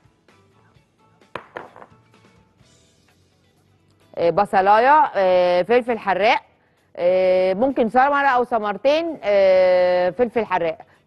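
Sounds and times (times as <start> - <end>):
faint background music: 0.0 - 11.0
glass bowl knocking and clinking: 1.4 - 2.0.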